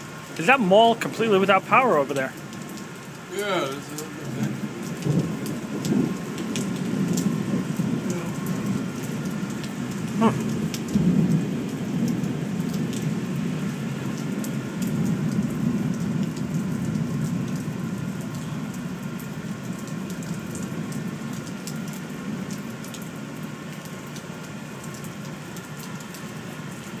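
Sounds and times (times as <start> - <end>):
heavy rain pouring: 0.0 - 27.0
rumble of thunder: 4.2 - 21.8.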